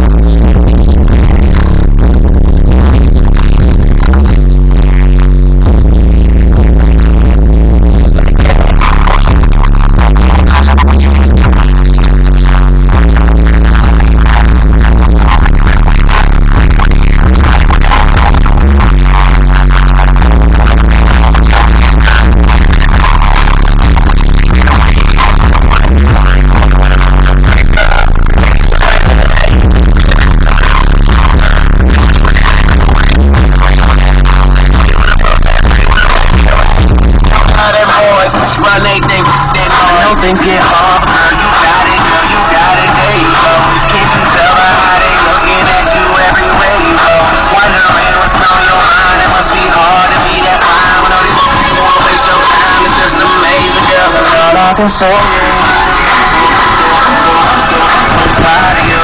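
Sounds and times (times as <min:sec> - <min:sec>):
music with heavy bass beat: 0:00.0 - 0:59.0.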